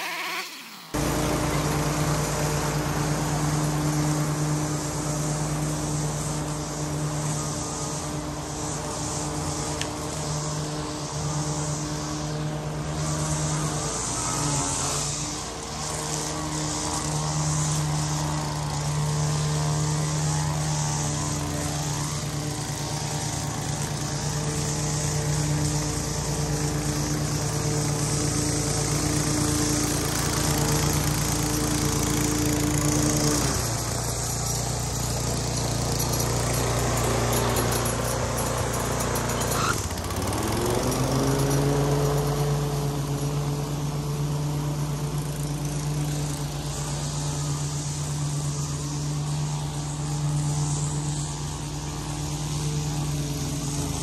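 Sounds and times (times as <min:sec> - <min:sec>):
lawn mower engine running: 0:00.0 - 0:54.0.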